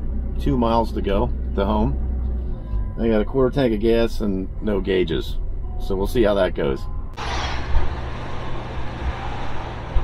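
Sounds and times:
car engine drone: 0.0 - 10.0.

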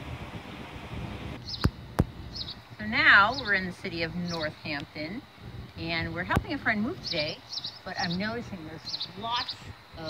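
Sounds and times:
outdoor noise: 0.0 - 10.0
sparrows chirping: 1.4 - 10.0.

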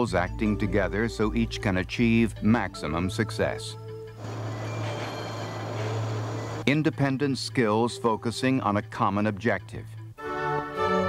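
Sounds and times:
hissing noise: 4.2 - 6.6.

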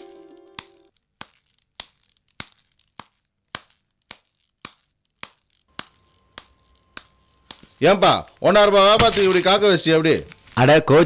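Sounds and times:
footsteps clicking: 0.6 - 9.7.

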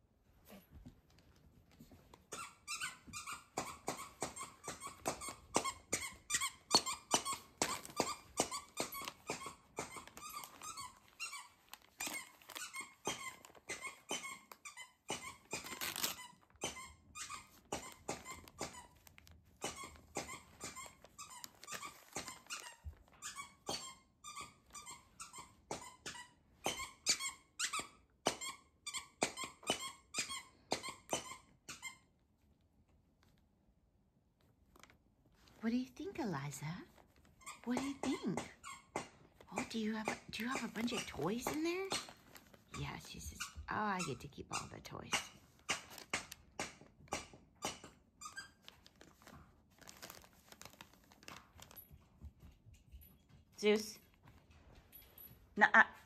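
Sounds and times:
squeaky dog toy squeaking: 2.2 - 32.3, 35.7 - 49.3.

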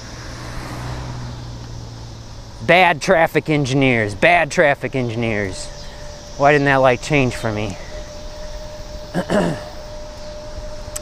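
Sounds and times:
bicycle tyres on pavement: 0.0 - 11.0.

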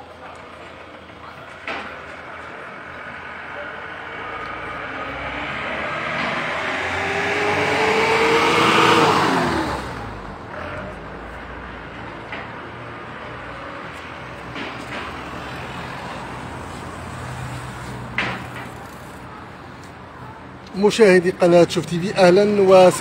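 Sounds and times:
vehicle passing by: 0.7 - 23.0.

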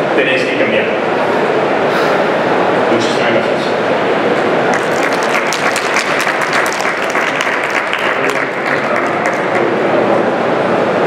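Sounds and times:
exhibition hall din: 0.0 - 11.0.

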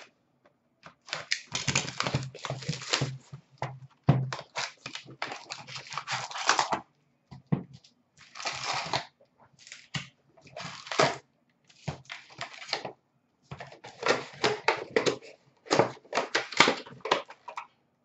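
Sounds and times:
cardboard and wrappers crinkling: 0.9 - 6.8, 7.8 - 12.9.

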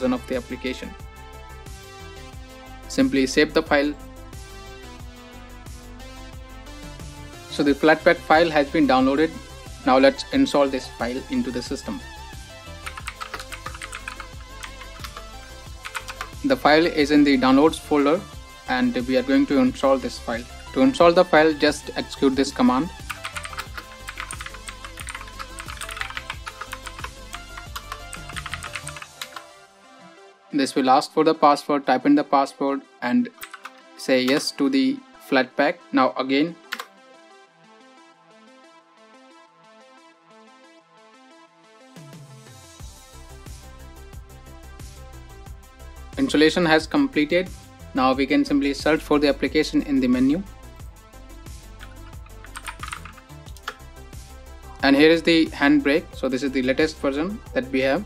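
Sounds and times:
quiet background music: 0.0 - 58.0
computer keyboard keys clicking: 12.8 - 16.3, 23.1 - 29.4, 33.4 - 34.5, 51.8 - 53.8.

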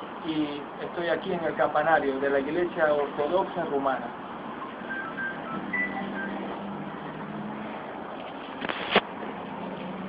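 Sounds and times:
noisy background: 0.0 - 10.0
vehicle engine humming: 3.8 - 10.0.

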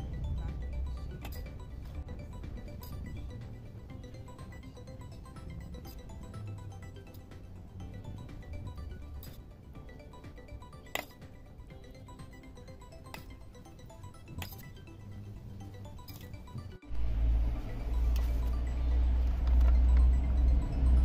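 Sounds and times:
background music: 0.0 - 21.0
low rumble: 16.9 - 21.0.

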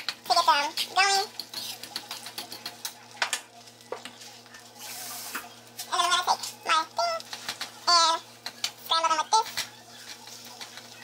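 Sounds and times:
fork scraping eggs in frying pan: 0.0 - 3.2
faint sizzle: 0.0 - 11.0.

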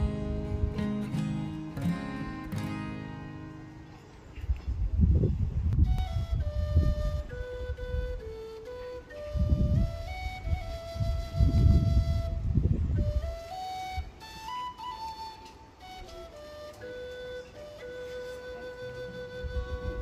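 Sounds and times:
slow flute melody: 5.8 - 20.0.

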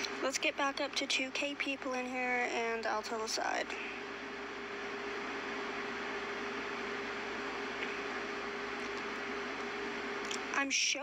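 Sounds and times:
faint hum tone: 0.0 - 11.0.

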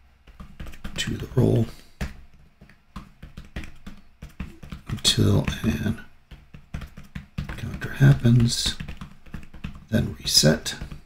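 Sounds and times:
computer keyboard typing: 2.0 - 11.0.

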